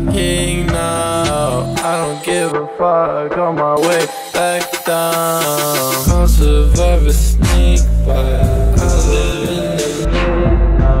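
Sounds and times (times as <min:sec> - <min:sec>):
deep bass: 0:00.0 - 0:01.8, 0:06.1 - 0:11.0
rap track: 0:00.0 - 0:11.0.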